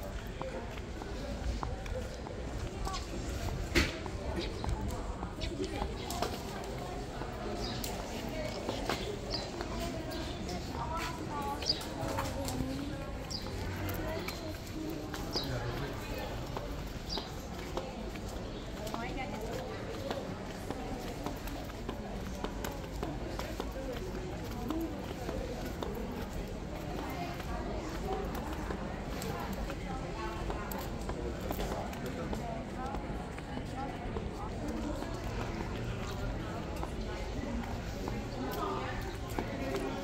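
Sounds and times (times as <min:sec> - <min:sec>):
crowd talking: 0:00.0 - 0:40.0
footsteps on stone paving: 0:00.0 - 0:40.0.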